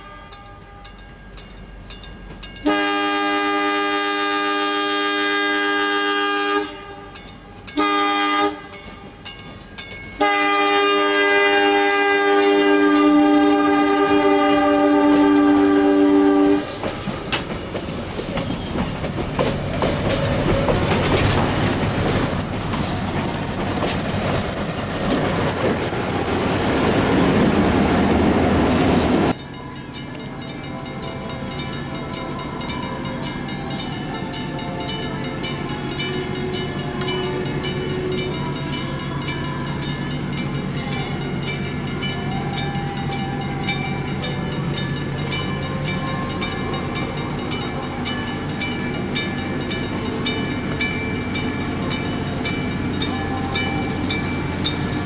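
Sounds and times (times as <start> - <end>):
locomotive air horn blasts: 2.6 - 7.2, 7.8 - 8.8, 10.2 - 16.8
train wheels clickety-clack: 15.1 - 29.4
high metallic squeal: 21.4 - 29.4.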